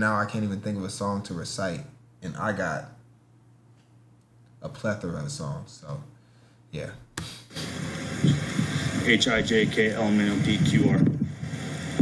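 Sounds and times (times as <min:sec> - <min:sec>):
traffic hiss: 0:07.2 - 0:12.0
low hum: 0:07.5 - 0:12.0.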